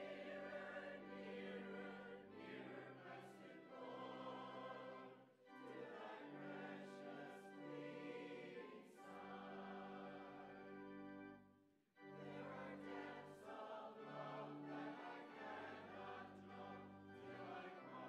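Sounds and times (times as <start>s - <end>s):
mixed choir singing: 0.0s - 10.8s, 12.1s - 18.0s.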